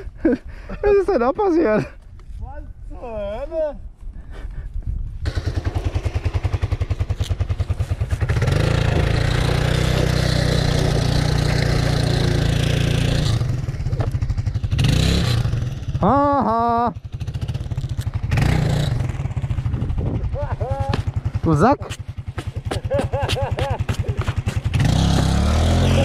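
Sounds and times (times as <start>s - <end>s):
motorcycle engine revving: 5.2s - 26.0s
rear wheel spinning in sand: 7.0s - 12.7s.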